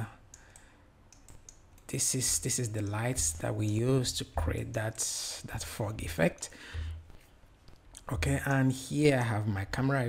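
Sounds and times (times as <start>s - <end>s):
computer mouse and key clicks: 0.3s - 2.0s.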